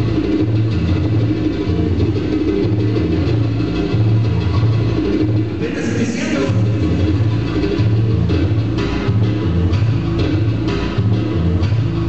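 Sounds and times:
heavy bass line: 0:00.0 - 0:12.0
loud latin dance music: 0:00.0 - 0:12.0.

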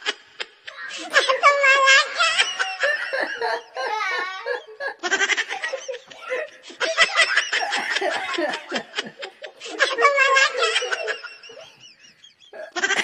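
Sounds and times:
people laughing: 0:00.9 - 0:13.0.

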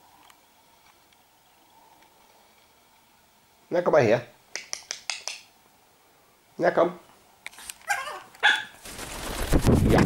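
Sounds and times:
small dog yapping: 0:07.8 - 0:08.8.

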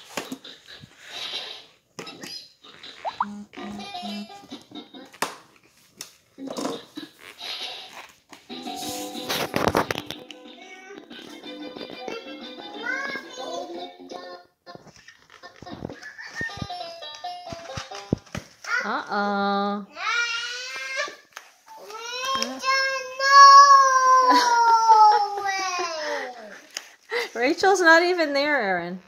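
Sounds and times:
short electronic tones: 0:03.0 - 0:04.2.

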